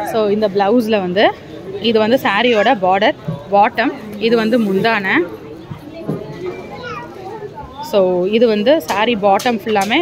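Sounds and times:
higher-pitched background talking: 1.6s - 8.2s.

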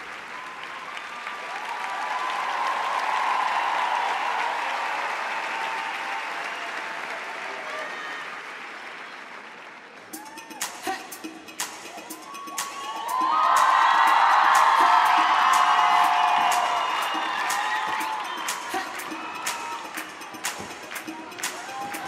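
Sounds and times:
voices cheering: 0.0s - 8.5s, 11.8s - 22.0s
audience applauding: 0.0s - 10.3s, 12.6s - 22.0s.

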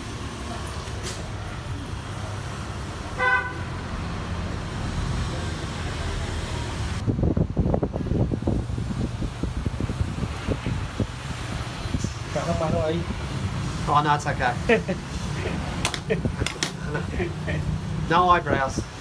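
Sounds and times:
vehicle horn toot: 3.2s - 3.8s.

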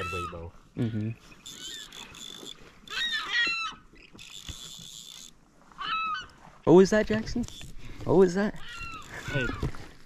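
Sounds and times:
gulls calling: 0.0s - 6.4s, 8.5s - 9.8s.

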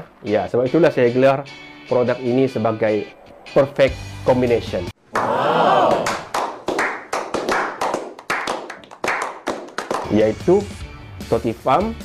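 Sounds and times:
short swelling sound: 2.2s - 4.9s
people clapping: 5.1s - 10.3s.

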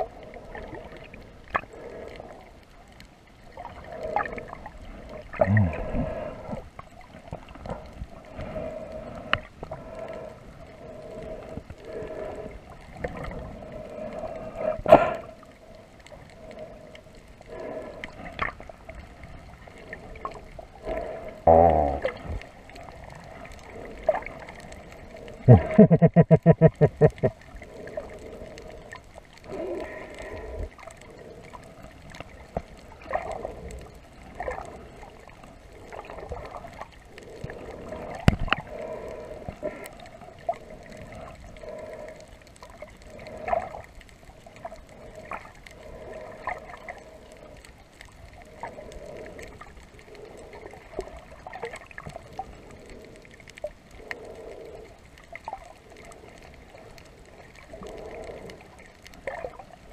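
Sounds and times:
underwater gurgling and sloshing: 0.0s - 59.9s.

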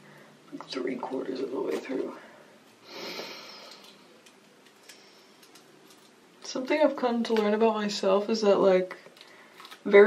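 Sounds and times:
faint ticks and crackles: 3.5s - 7.6s.

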